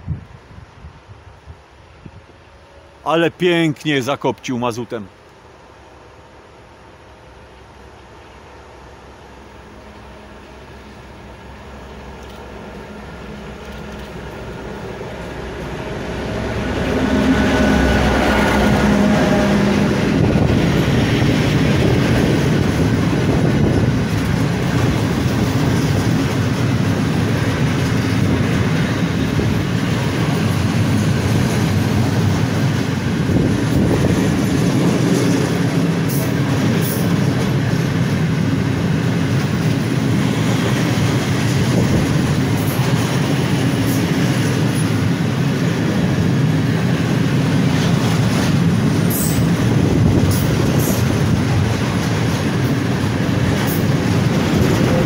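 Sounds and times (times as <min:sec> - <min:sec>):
diesel locomotive engine: 0:00.0 - 0:55.0
train wheels rumbling on rails: 0:00.0 - 0:55.0
clickety-clack over rail joints: 0:18.2 - 0:55.0.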